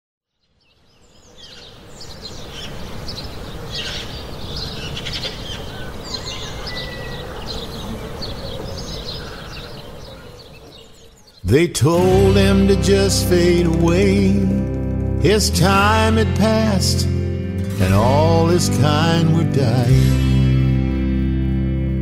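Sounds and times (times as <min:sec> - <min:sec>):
birds chirping and trilling: 0:00.2 - 0:13.6
outdoor background hiss: 0:00.3 - 0:12.1.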